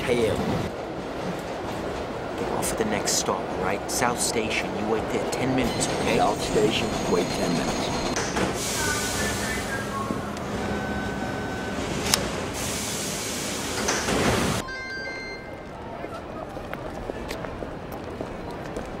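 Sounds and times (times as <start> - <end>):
subway train rumble and hiss: 0.0 - 14.6
crowd chatter: 15.4 - 19.0.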